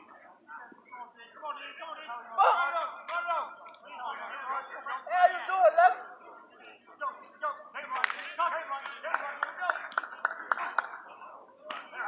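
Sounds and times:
men calling and shouting: 0:00.0 - 0:12.0.

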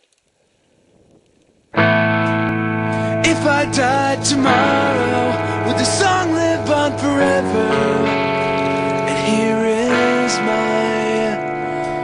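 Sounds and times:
distorted electric guitar chord: 0:01.8 - 0:12.0.

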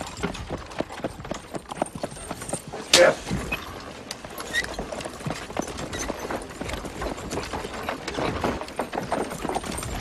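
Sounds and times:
horse hooves clopping on dirt: 0:00.0 - 0:10.0.

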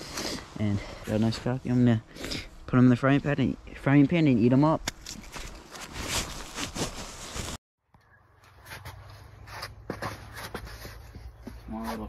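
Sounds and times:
snow crunching: 0:05.3 - 0:07.6.

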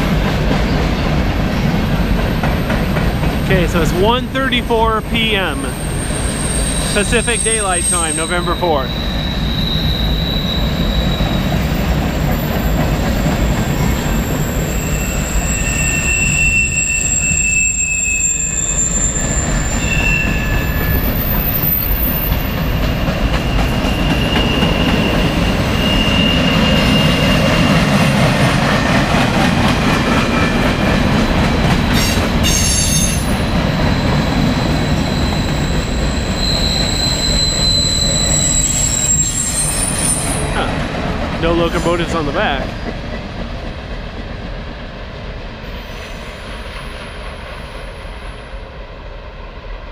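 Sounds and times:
freight cars rumbling on rails: 0:00.0 - 0:49.0
high wheel squeals: 0:05.4 - 0:11.9, 0:13.8 - 0:22.8, 0:23.4 - 0:27.7, 0:32.0 - 0:40.7.

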